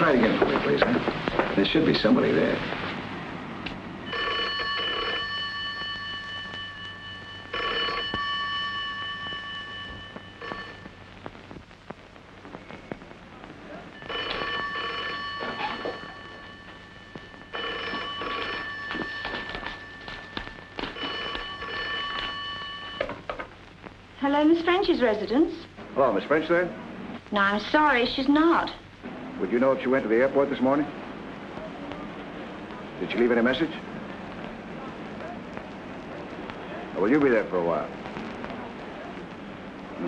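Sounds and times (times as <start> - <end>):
telephone bell ringing: 4.0 - 11.0, 14.0 - 23.3.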